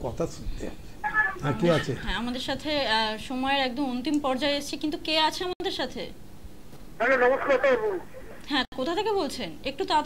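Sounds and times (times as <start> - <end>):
voices talking: 1.0 - 2.3, 7.0 - 8.7.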